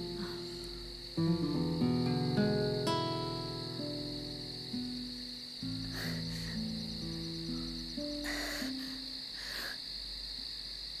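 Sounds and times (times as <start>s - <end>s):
soft music of held notes: 0.0s - 9.4s
crickets chirping: 0.0s - 11.0s.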